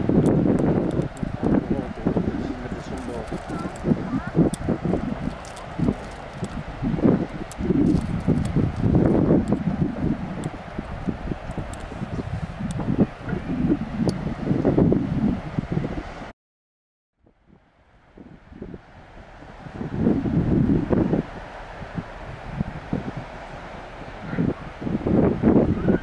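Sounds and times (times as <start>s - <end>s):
wind buffeting microphone: 0.0s - 16.3s, 17.2s - 26.0s.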